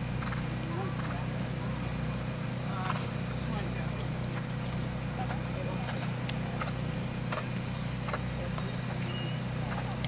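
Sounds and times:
low outdoor hum: 0:00.0 - 0:10.0
horse hoofbeats on grass: 0:03.8 - 0:10.0.

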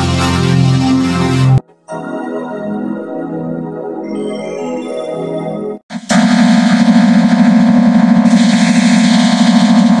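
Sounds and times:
distorted stuttering electronic buzz: 0:05.9 - 0:10.0.

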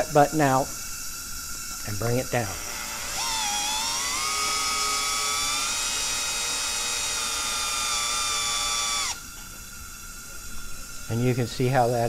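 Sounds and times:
cordless drill motor whine: 0:00.8 - 0:12.0.

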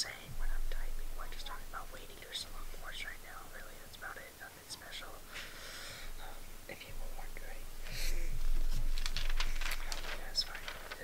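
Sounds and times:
soft whispering: 0:00.0 - 0:11.0
paper pages crinkling: 0:08.4 - 0:11.0.

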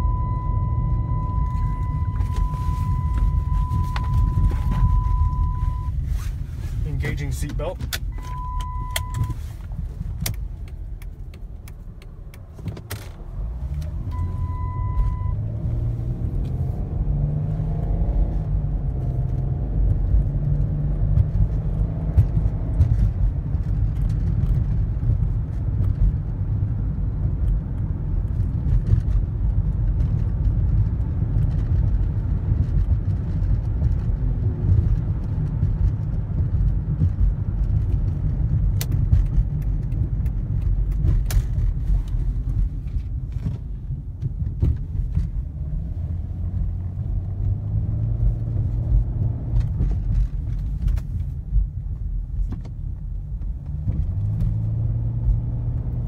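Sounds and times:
seatbelt reminder chime: 0:00.0 - 0:06.0, 0:08.1 - 0:09.4, 0:14.1 - 0:15.4
car engine accelerating: 0:00.0 - 0:52.4, 0:53.1 - 0:56.0.

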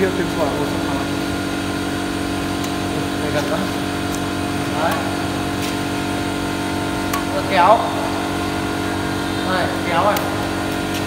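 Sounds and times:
steady machine hum: 0:00.0 - 0:11.0.

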